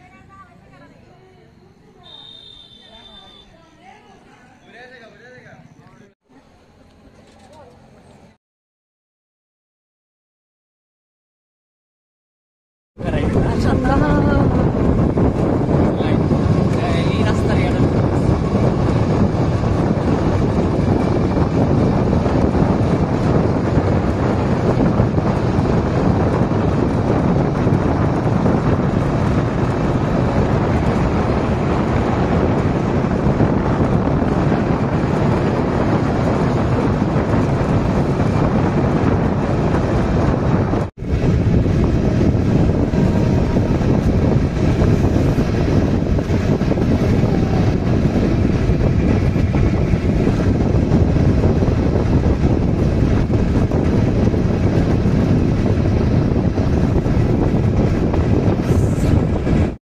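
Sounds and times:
vehicle and road noise: 0.0 - 8.4, 13.0 - 59.8
wind on microphone: 13.0 - 59.8.

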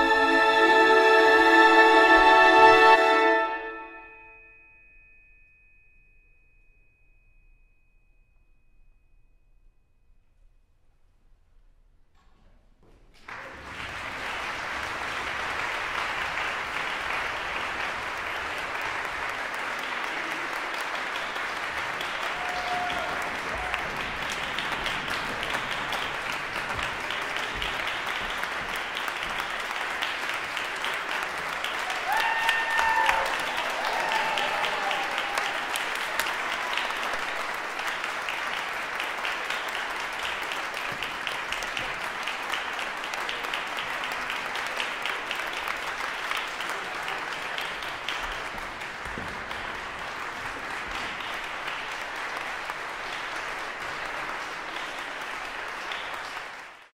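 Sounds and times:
audience applauding: 13.1 - 56.9
crowd cheering: 13.2 - 56.9.

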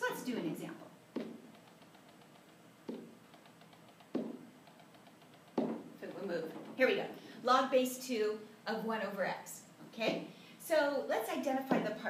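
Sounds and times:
hand tapping on whiteboard: 1.1 - 6.0.

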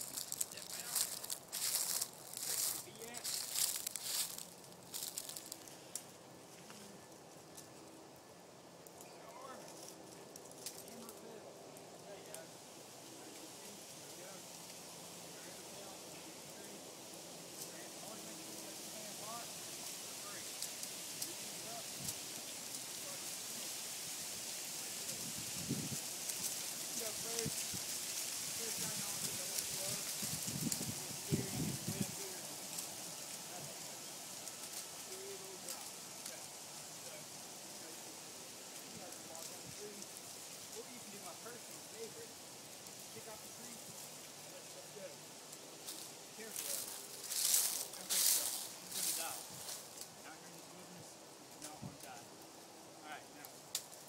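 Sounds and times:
faint voice-like sounds: 0.0 - 8.2, 8.9 - 25.5, 28.5 - 42.4, 43.0 - 52.3
outdoor background hiss: 0.0 - 54.0
rustling crinkling noise: 0.0 - 54.0.

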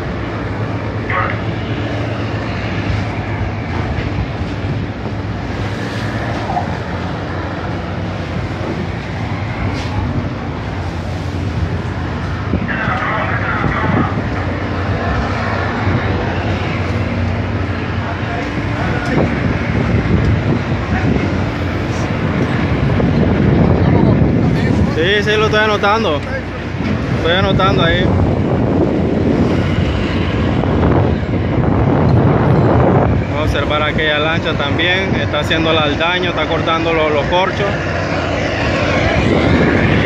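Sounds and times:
boat engine humming: 0.0 - 40.0
sea noise: 0.0 - 40.0
wind: 0.0 - 40.0.

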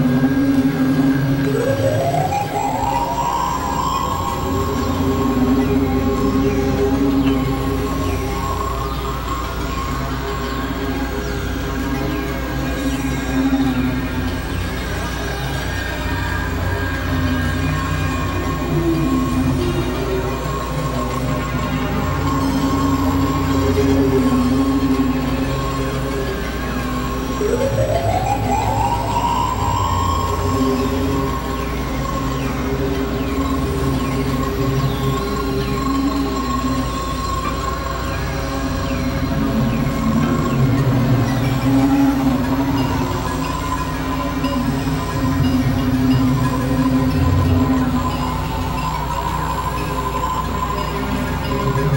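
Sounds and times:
electronic synthesizer drone: 0.0 - 51.9.

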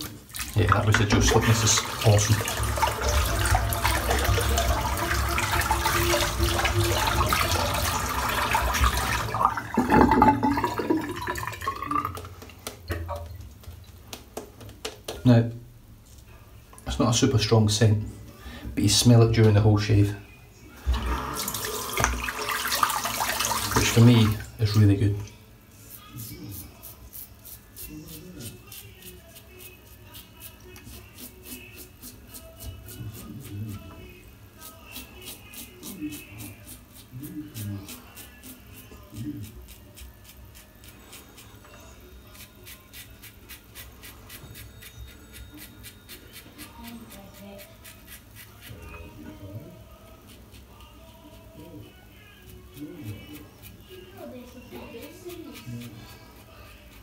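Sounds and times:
faint background music: 0.0 - 57.0
razor scraping stubble: 25.8 - 33.9, 34.6 - 49.2, 52.4 - 57.0.

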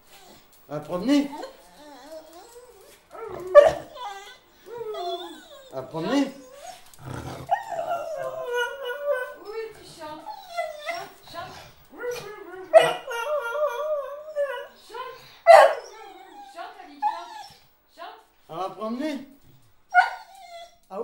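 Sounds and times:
dog howling and whining: 1.3 - 17.6, 19.9 - 21.0
dog sharp cries: 3.2 - 6.8, 15.5 - 17.5, 19.9 - 20.9.

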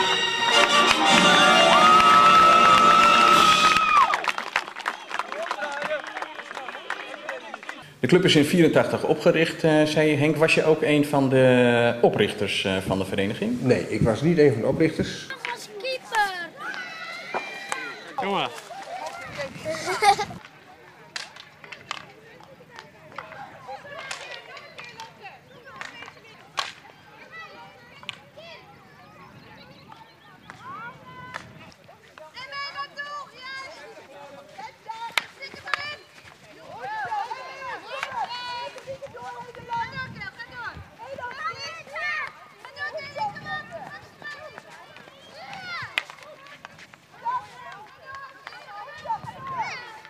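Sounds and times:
children shouting: 0.0 - 4.3, 16.5 - 20.1, 47.2 - 50.0.

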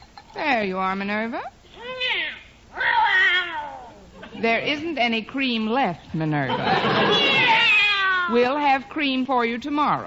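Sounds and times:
cat meowing: 1.8 - 4.1, 7.1 - 8.4.

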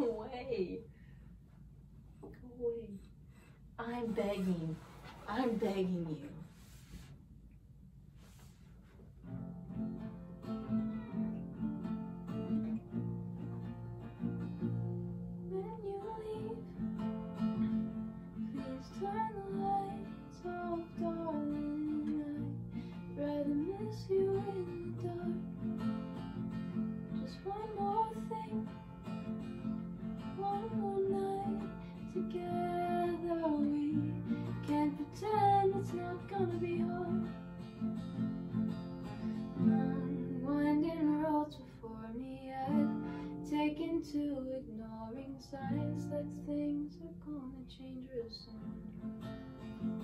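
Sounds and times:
acoustic guitar chords: 9.2 - 50.0
woman singing: 15.5 - 16.8, 18.5 - 25.7, 27.1 - 28.8, 30.2 - 37.6, 39.3 - 49.0.

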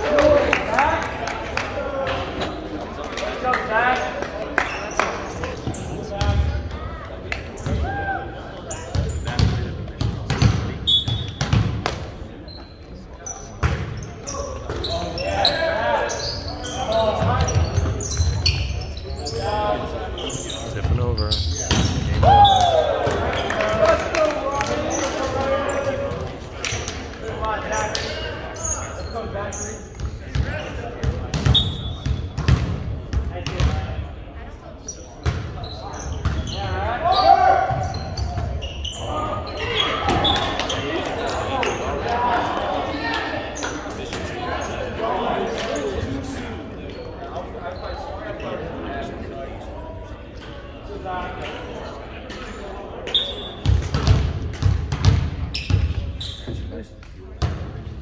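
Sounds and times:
voices calling and talking: 0.0 - 57.8
volleyballs smacking and bouncing: 8.9 - 12.1, 53.6 - 56.0.

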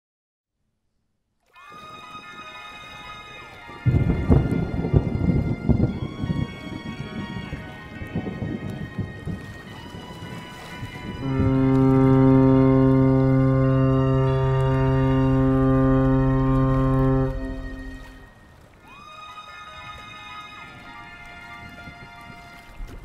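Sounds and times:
crackling rain: 1.6 - 23.0
sustained tones with pitch glides: 11.2 - 18.6
deep steady drone: 11.2 - 18.7.

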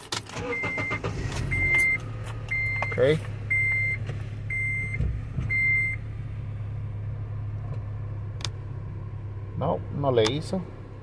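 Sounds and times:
car engine idling: 0.3 - 11.0
dashboard warning chime: 0.4 - 6.0.

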